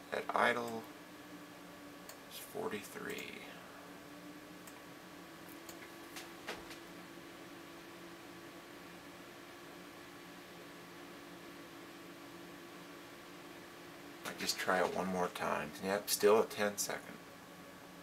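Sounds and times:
computer fans humming: 0.0s - 18.0s.

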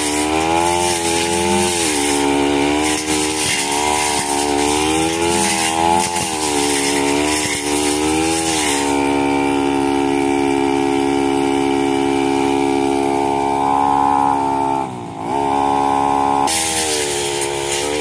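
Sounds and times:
blade cutting thick grass: 0.0s - 18.0s
brush cutter engine running: 0.0s - 18.0s.

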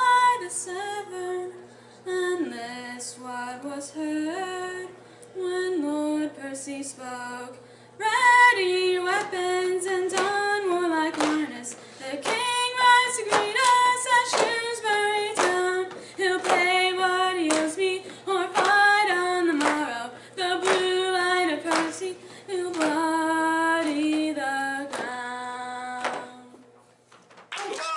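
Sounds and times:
woman singing unaccompanied: 0.0s - 26.6s.

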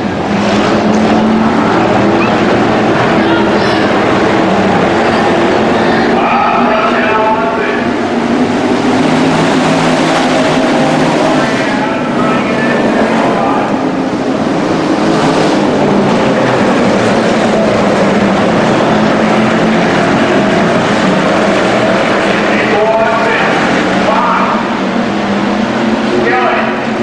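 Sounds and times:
race car engines droning: 0.0s - 27.0s.

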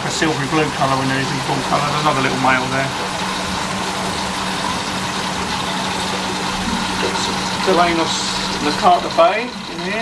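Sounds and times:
aquarium air pumps humming: 0.0s - 10.0s.

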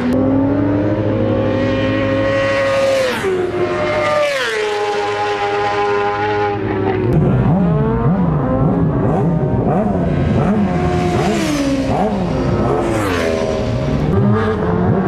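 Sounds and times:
racing motorcycle engines revving: 0.0s - 15.0s.

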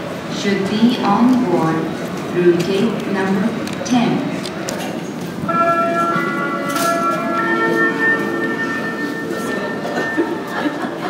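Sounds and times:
public-address chime: 5.5s - 11.0s.

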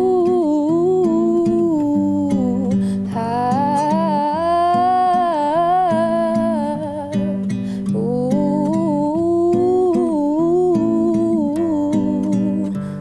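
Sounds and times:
fingerpicked classical guitar: 0.0s - 13.0s
woman singing: 0.0s - 13.0s.

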